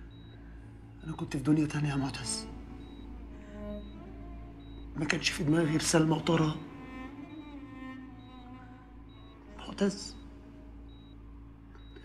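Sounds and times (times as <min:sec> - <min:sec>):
heart monitor beeping: 0:00.0 - 0:00.4, 0:01.9 - 0:11.2, 0:11.8 - 0:12.0
low steady hum: 0:00.0 - 0:12.0.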